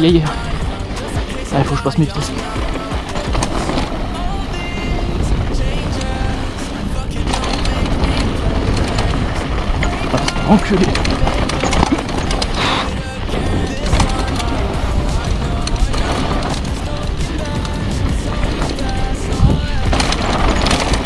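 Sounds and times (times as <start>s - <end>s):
mountain bike rattling over bumps: 0.0s - 21.0s
music: 0.0s - 21.0s
wind rumbling on microphone: 0.0s - 21.0s.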